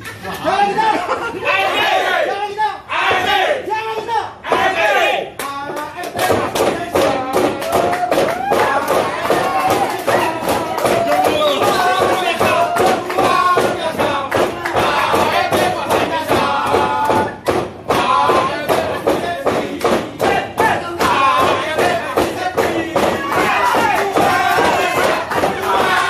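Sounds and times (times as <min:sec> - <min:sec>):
group chanting a cheer: 0:01.4 - 0:26.0
claps and thumps: 0:05.4 - 0:26.0.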